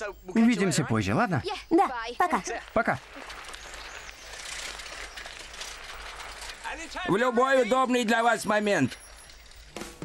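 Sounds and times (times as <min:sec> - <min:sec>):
bicycle tyres on gravel: 0:02.2 - 0:09.8.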